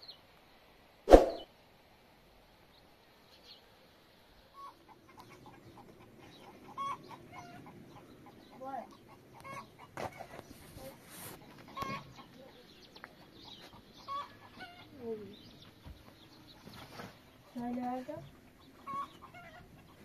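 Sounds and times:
sharp knock: 1.1 - 1.4
chickens clucking: 4.6 - 20.0.

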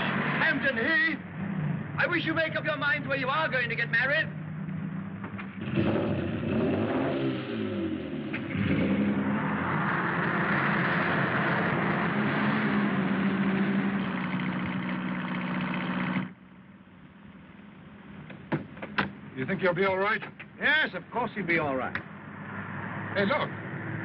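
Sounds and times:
car engine at speed: 0.0 - 2.7, 3.3 - 16.6, 21.9 - 24.0
wind and road noise: 0.0 - 24.0.

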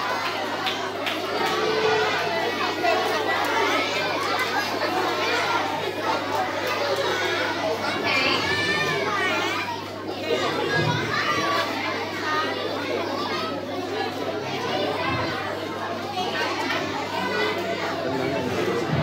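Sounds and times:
crowd of children chattering: 0.0 - 19.0.

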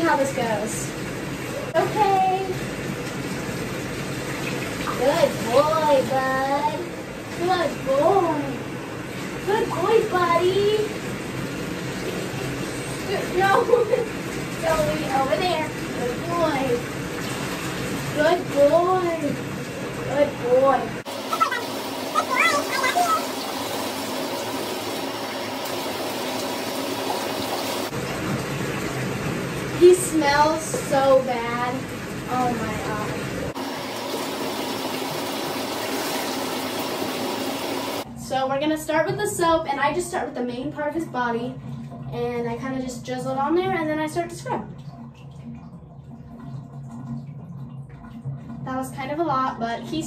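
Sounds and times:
water pouring and splashing: 0.0 - 38.1, 40.3 - 50.0.

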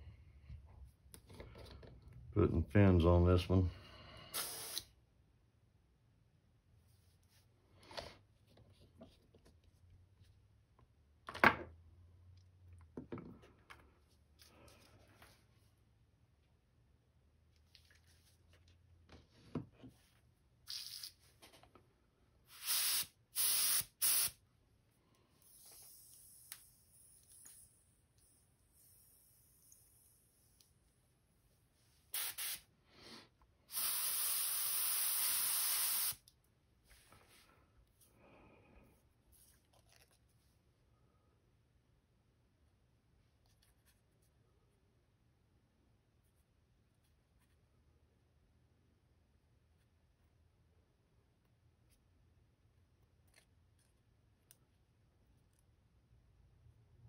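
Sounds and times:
airbrush hissing: 4.2 - 4.9, 20.7 - 21.2, 22.5 - 24.4, 25.4 - 30.6, 32.1 - 36.2.

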